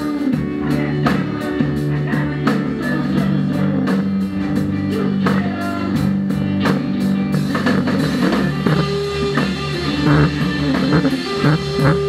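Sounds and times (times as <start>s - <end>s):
rock band playing: 0.0s - 12.0s
drum and cymbal hits: 5.2s - 12.0s.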